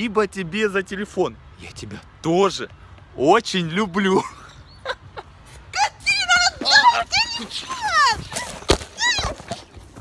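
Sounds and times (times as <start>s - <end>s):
woman shrieking: 5.8s - 9.5s.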